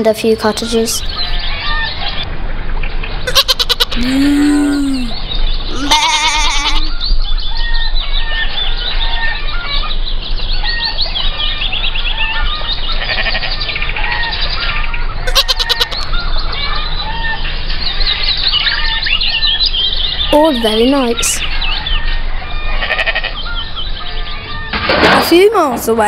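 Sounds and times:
small birds chirping: 0.3s - 2.2s, 9.9s - 22.3s
farm animal bleating: 3.3s - 4.0s, 5.7s - 6.9s, 13.0s - 13.6s, 15.3s - 16.1s, 22.8s - 23.4s.

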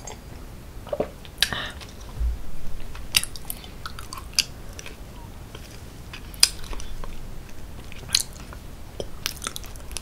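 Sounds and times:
soft low thump: 2.2s - 3.5s
wet chewing sounds: 3.0s - 10.0s.

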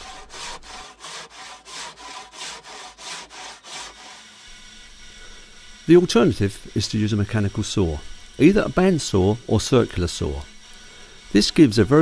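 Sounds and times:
hand saw rasping through block: 0.0s - 4.6s.

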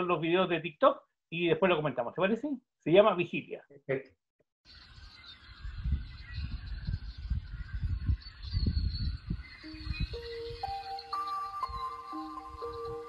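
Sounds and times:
faint high chirps: 4.7s - 13.0s
wind on microphone: 4.8s - 13.0s
slow melody of held notes: 9.6s - 13.0s.

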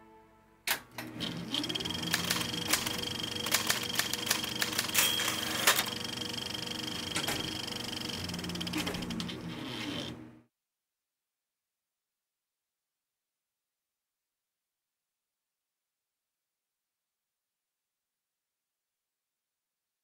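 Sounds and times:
typewriter keys clacking: 1.5s - 7.8s.

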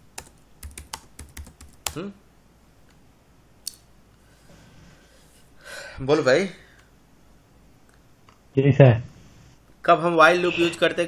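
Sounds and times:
computer keyboard typing: 0.1s - 2.1s.

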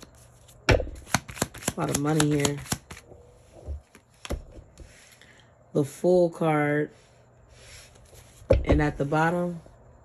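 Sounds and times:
sharp card tap: 1.0s - 3.0s.

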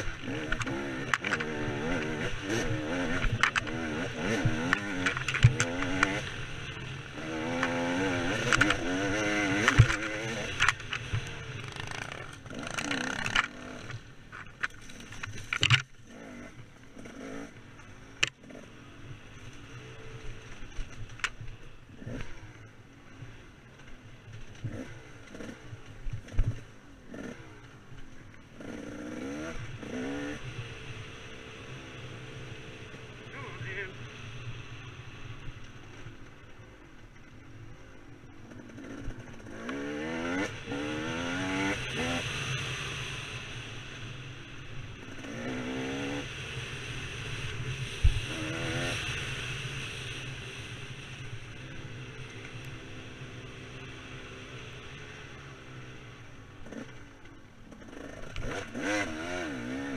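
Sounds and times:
bike knocking on ruts and rocks: 0.0s - 6.2s, 7.3s - 16.0s
dirt bike engine revving: 0.0s - 14.1s, 14.8s - 20.6s, 24.5s - 27.8s, 28.5s - 35.3s, 38.4s - 43.7s, 45.0s - 55.8s, 57.7s - 59.9s.

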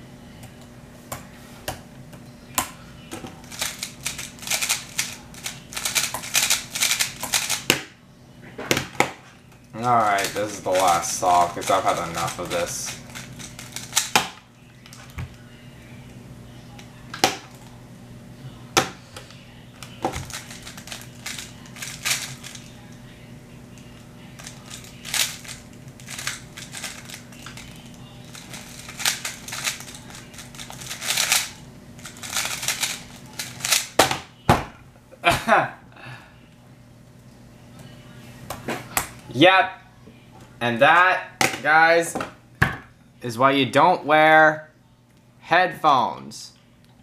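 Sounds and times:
low steady hum: 0.0s - 47.0s
plastic puzzle cube clacking: 28.3s - 31.5s.

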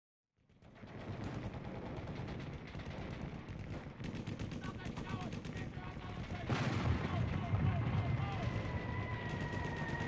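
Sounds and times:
rapid gunfire: 0.5s - 10.0s.

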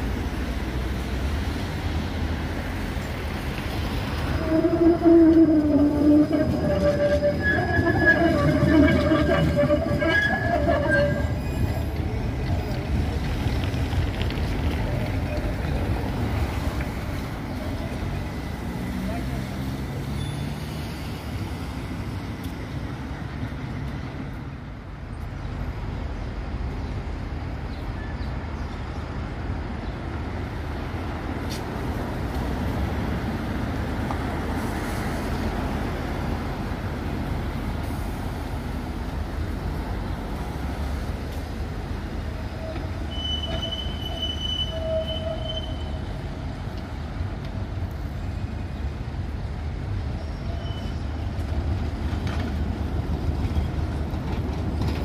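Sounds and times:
steady traffic hum: 0.0s - 55.0s
tram passing: 0.0s - 55.0s.

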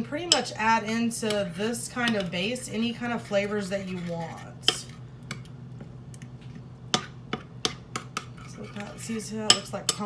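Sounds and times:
spoon stirring thick mixture: 0.0s - 10.0s.

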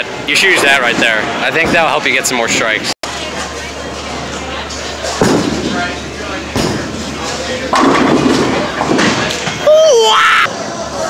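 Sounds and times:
background chatter: 0.0s - 11.0s
bowling pins clattering: 6.5s - 9.6s
bowling balls thudding: 7.7s - 9.6s.

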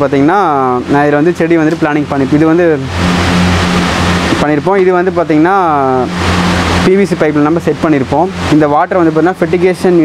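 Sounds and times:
man speaking: 0.0s - 2.9s, 4.4s - 6.2s, 6.8s - 10.0s
low mechanical hum: 0.0s - 10.0s.

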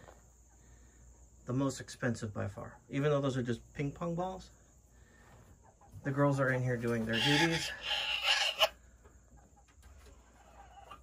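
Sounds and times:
hen raspy call: 7.1s - 8.8s.

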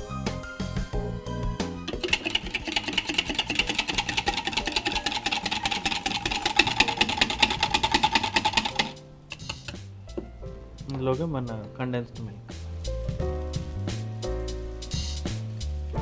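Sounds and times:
background music: 0.0s - 16.0s
whisk clicking against glass bowl: 1.9s - 9.8s.

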